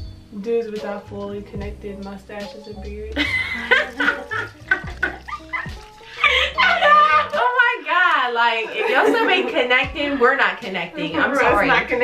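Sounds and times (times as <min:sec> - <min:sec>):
quiet background music: 0:00.0 - 0:12.0
women laughing hard: 0:03.2 - 0:07.5, 0:08.6 - 0:10.2.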